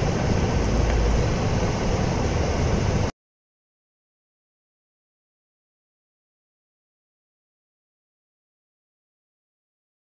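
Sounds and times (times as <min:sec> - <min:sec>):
low rumbling background noise: 0:00.0 - 0:03.1.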